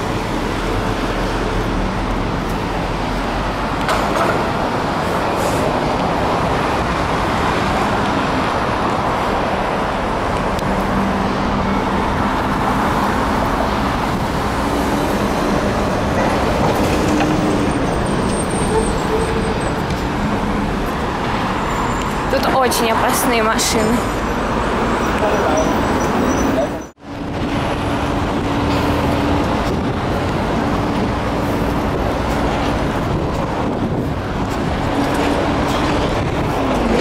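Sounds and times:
city road traffic: 0:00.0 - 0:37.0.

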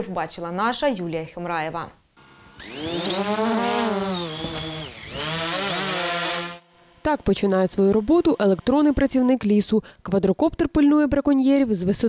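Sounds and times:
drone propellers whining: 0:02.2 - 0:09.3.

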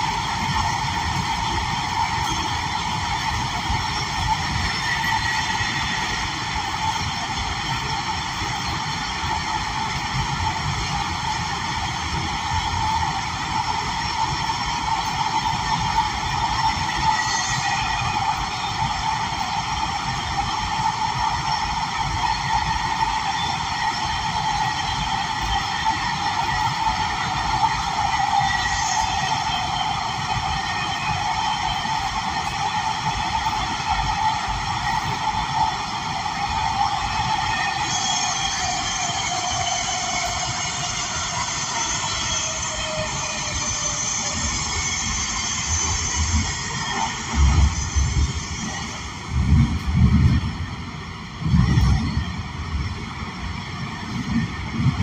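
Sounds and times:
subway car rumbling in tunnel: 0:00.0 - 0:55.0.

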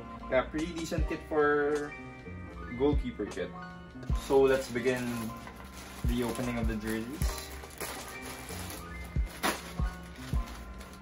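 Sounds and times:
music with steady beat: 0:00.0 - 0:11.0
plastic bag tearing open: 0:04.2 - 0:11.0.

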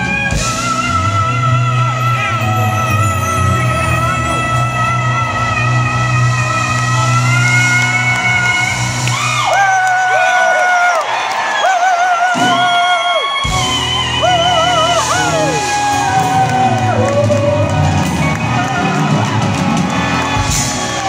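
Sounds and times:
woman singing with vibrato: 0:00.0 - 0:09.1
live band playing: 0:00.0 - 0:11.5, 0:12.2 - 0:21.0.

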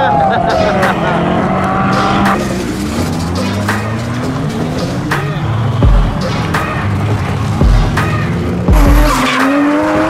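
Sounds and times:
background music: 0:00.0 - 0:10.0
car engines running at low revs: 0:00.0 - 0:10.0.

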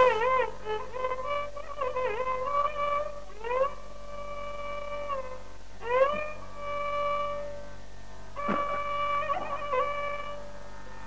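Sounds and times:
faint mains hum: 0:00.0 - 0:11.0.

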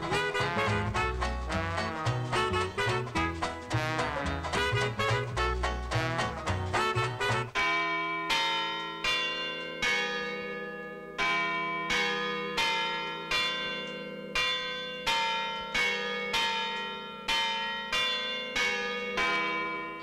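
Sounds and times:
chiming bells playing slow tune: 0:07.6 - 0:20.0.

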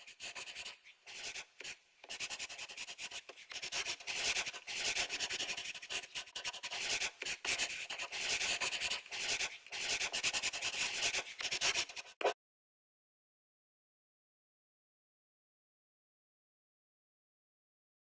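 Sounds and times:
scratchy handwriting strokes: 0:00.0 - 0:12.4.

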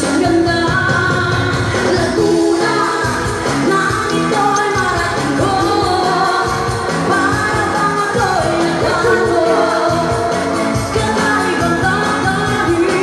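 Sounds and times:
pop backing track: 0:00.0 - 0:13.0
woman singing into microphone: 0:00.0 - 0:13.0.

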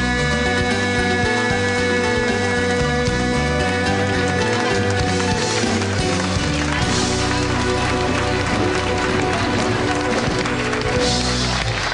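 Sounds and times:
bouzouki: 0:00.0 - 0:11.9
live band playing: 0:00.0 - 0:11.9.

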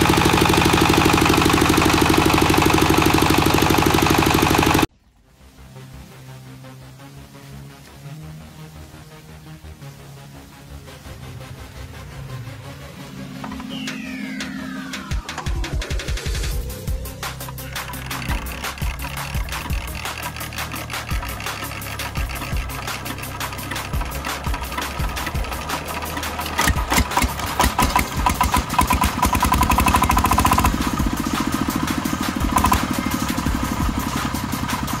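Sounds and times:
diesel engine chugging: 0:00.0 - 0:04.9, 0:11.5 - 0:35.0.

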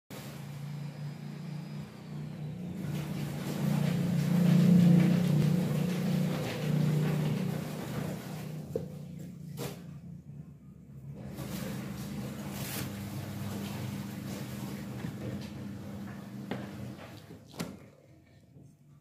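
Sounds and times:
low engine hum: 0:00.1 - 0:17.4.

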